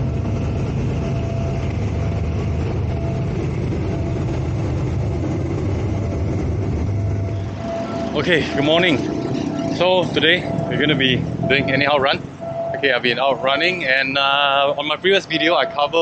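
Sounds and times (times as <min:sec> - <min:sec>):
diesel locomotive engine rumble: 0:00.0 - 0:16.0.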